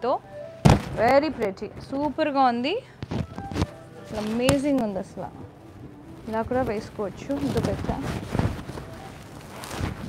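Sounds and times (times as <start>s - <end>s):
woman's voice: 0.0s - 0.2s, 1.0s - 2.9s, 4.1s - 5.5s, 6.2s - 8.2s
silk fabric rustling: 3.1s - 10.0s.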